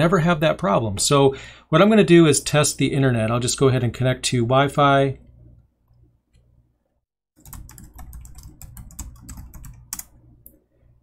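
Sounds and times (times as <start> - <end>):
laptop keyboard typing: 7.4 - 10.6.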